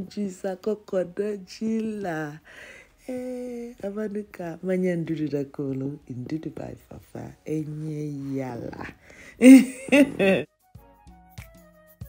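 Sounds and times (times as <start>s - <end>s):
person singing: 9.4s - 10.4s.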